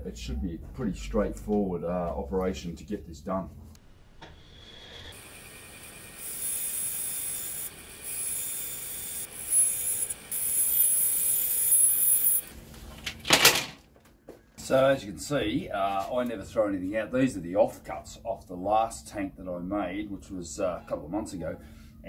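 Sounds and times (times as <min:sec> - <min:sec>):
bandsaw cutting: 0:04.3 - 0:12.5.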